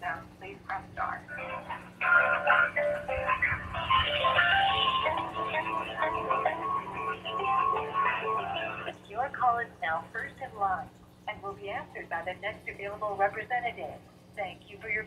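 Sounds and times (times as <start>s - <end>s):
recorded announcement voice: 0.0s - 15.0s
hold music through phone speaker: 0.7s - 9.0s.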